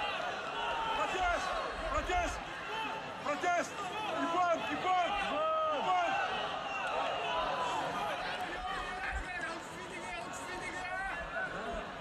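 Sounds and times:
crowd voices calling and talking: 0:00.0 - 0:12.0.

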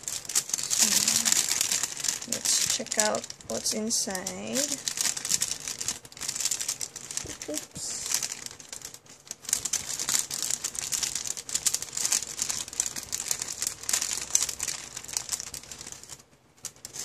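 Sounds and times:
wrapping paper crinkling: 0:00.0 - 0:17.0.

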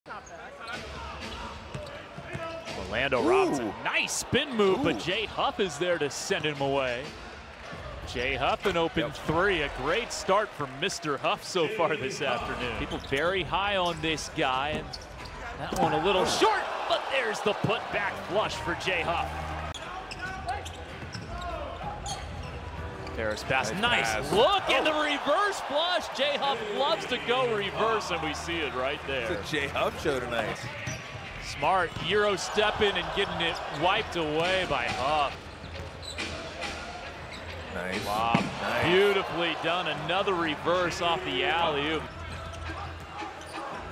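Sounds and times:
sneakers squeaking on floor: 0:00.1 - 0:02.8, 0:14.6 - 0:15.6, 0:19.7 - 0:23.5, 0:30.6 - 0:32.2, 0:34.8 - 0:37.7, 0:41.6 - 0:43.9.

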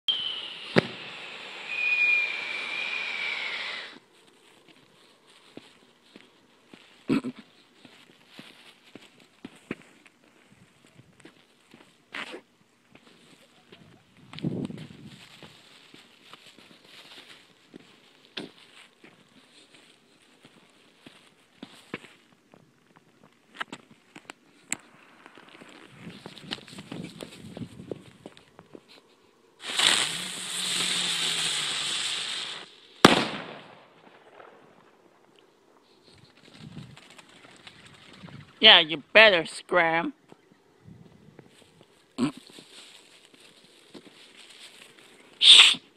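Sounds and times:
firecracker pops: 0:00.1 - 0:01.1, 0:29.6 - 0:31.0, 0:32.2 - 0:34.6
loud firework bang: 0:00.1 - 0:01.2, 0:33.0 - 0:34.5
distant firework reports: 0:00.1 - 0:03.1
firework hissing: 0:00.1 - 0:04.0, 0:29.6 - 0:33.8, 0:45.4 - 0:45.8.

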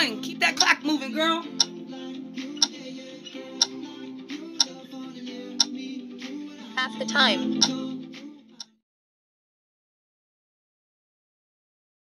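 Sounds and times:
background music with guitar: 0:00.0 - 0:08.5
timer ticking: 0:00.5 - 0:01.8, 0:02.5 - 0:04.8, 0:05.4 - 0:05.8, 0:07.1 - 0:07.9.

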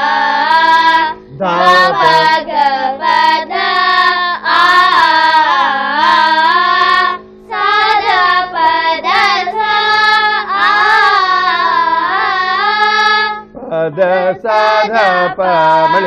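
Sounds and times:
girls singing a vowel melody: 0:00.0 - 0:16.0
steady drone: 0:00.0 - 0:16.0.

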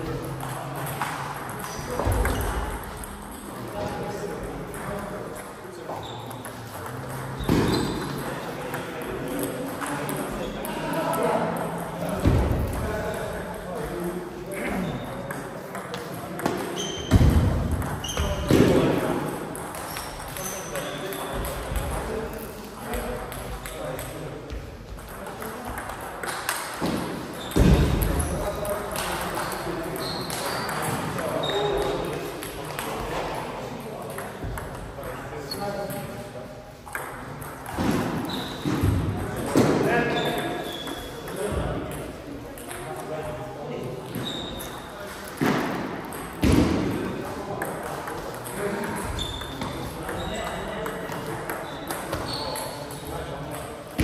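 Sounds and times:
table tennis ball knocking: 0:15.3 - 0:20.5, 0:36.8 - 0:39.7.

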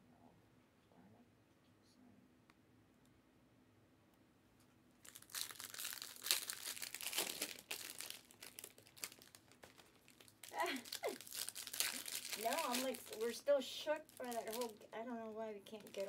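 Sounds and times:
plastic wrapping crinkling and tearing: 0:05.0 - 0:14.9, 0:15.6 - 0:16.0
person speaking: 0:10.5 - 0:16.0.

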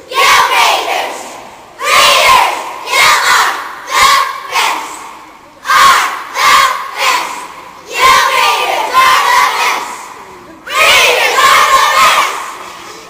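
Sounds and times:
cheerleaders shouting a cheer: 0:00.0 - 0:13.0.

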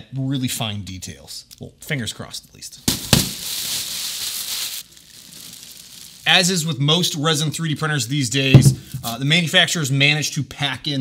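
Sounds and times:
plastic bag crinkling: 0:02.9 - 0:06.7
knock: 0:08.6 - 0:08.9.

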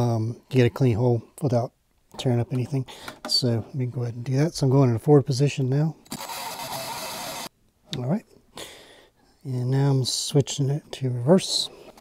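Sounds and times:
cordless drill cutting plastic: 0:06.1 - 0:07.5.

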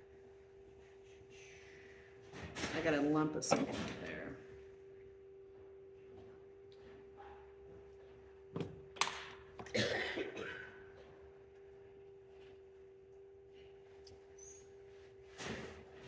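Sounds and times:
pottery wheel motor hum: 0:00.0 - 0:16.0.

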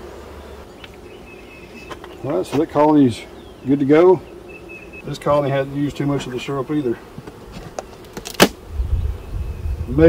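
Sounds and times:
bees buzzing faintly: 0:00.0 - 0:10.0
wind rumble on microphone: 0:08.7 - 0:10.0.

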